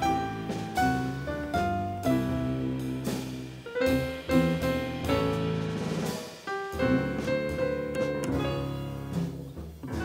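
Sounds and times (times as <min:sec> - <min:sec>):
plucked bass line: 0:00.0 - 0:06.0, 0:06.8 - 0:10.0
drums: 0:00.0 - 0:10.0
piano chords: 0:00.0 - 0:10.0.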